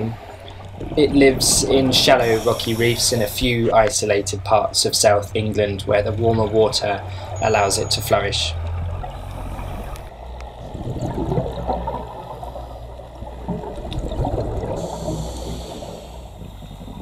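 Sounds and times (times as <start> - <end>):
underwater water gurgling and rushing: 0.0 - 17.0.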